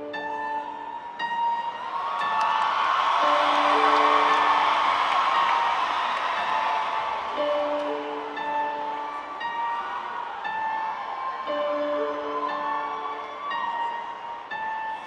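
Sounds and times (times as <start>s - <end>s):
audience crowd noise: 0.0s - 15.0s.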